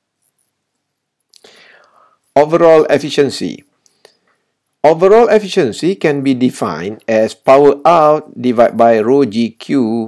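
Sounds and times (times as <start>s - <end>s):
person breathing in: 1.4s - 2.3s.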